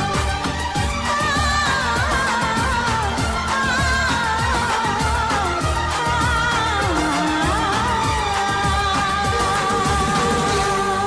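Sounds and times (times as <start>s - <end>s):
rhythmic beat and instrumental backing: 0.0s - 11.0s
person singing: 1.0s - 11.0s.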